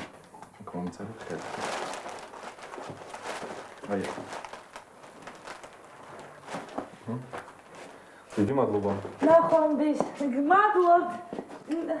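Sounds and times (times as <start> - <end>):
gift wrapping paper rustling: 0.8 - 11.7
person speaking: 8.3 - 12.0.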